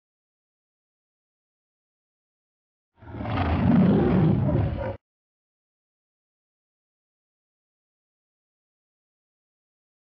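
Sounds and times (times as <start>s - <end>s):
low rough roar: 3.0s - 5.0s.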